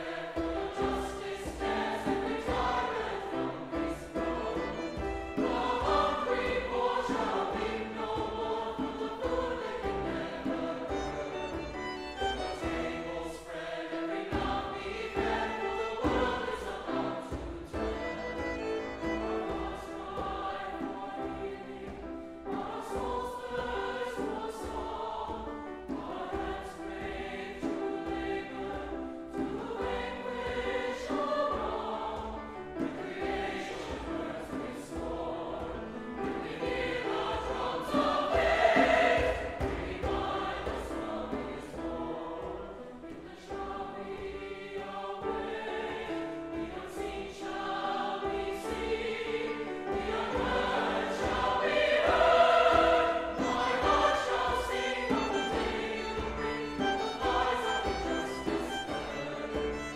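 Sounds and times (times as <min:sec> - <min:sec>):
mixed choir singing in harmony: 0:00.0 - 0:59.9
piano: 0:00.0 - 0:59.9
strings: 0:00.0 - 0:59.9.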